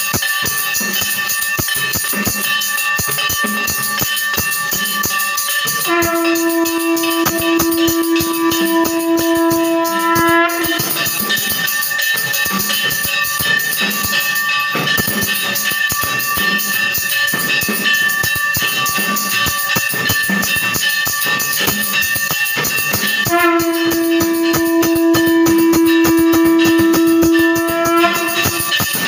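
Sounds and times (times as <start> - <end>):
drums beating fast: 0.0 - 29.0
high ringing tone: 0.6 - 29.0
conch shell blown: 5.8 - 11.6, 23.1 - 29.0.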